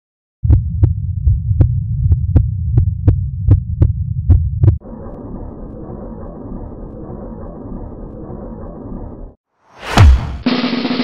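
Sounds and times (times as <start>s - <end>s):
low pulsing rumble: 0.4s - 9.1s.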